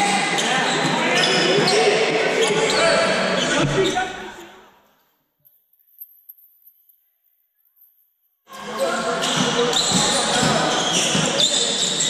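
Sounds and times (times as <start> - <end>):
sneaker squeaks: 0.0 - 4.5, 8.8 - 12.0
voices echoing in a hall: 0.0 - 6.0, 6.8 - 12.0.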